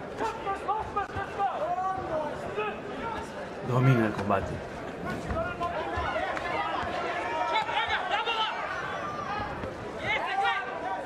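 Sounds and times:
arena background noise: 0:00.0 - 0:11.0.

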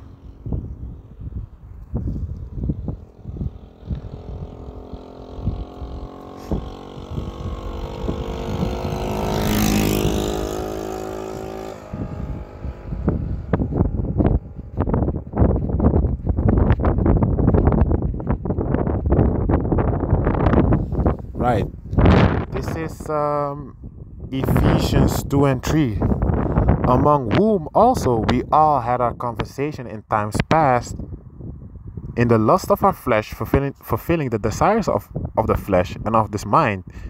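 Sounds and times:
vehicle engine hum: 0:00.0 - 0:23.1
knocks and rumbles on microphone: 0:05.4 - 0:21.2.

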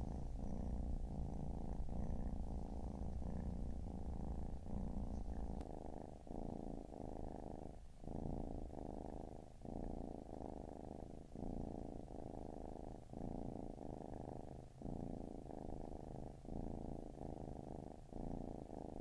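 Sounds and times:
cat purring: 0:00.0 - 0:19.0.

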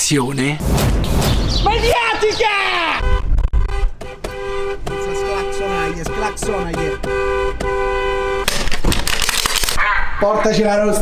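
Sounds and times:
car horn: 0:02.7 - 0:08.7.

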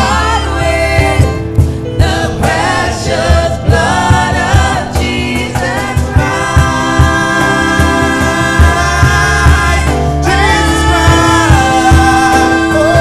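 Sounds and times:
backing singers: 0:00.0 - 0:13.0
electric keyboard chords: 0:00.0 - 0:13.0
low percussion beat: 0:00.0 - 0:13.0
woman singing lead: 0:00.0 - 0:13.0.

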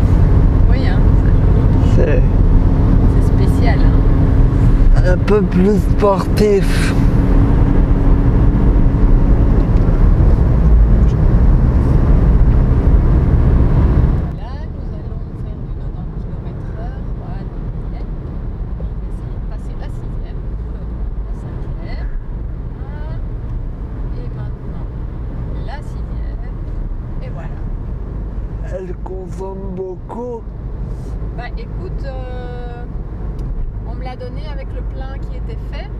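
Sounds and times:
car engine hum: 0:00.0 - 0:35.9
road and tyre rumble: 0:00.0 - 0:35.9.

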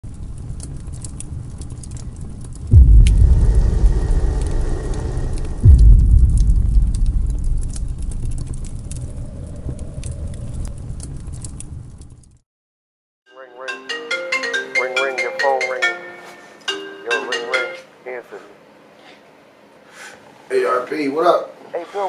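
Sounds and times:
low rumble with crackling: 0:00.1 - 0:12.4
deep booming hits: 0:02.7 - 0:10.1.

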